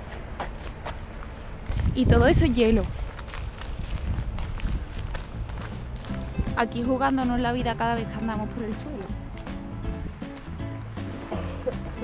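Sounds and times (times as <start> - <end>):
wind rumble on microphone: 0.0 - 10.9
footsteps on icy road: 0.0 - 12.0.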